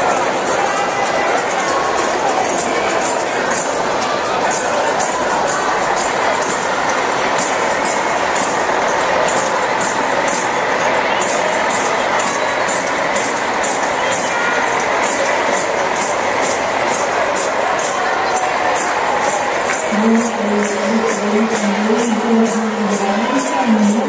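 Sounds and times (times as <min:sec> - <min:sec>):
crowd noise: 0:00.0 - 0:24.0
jingling beat: 0:00.0 - 0:24.0.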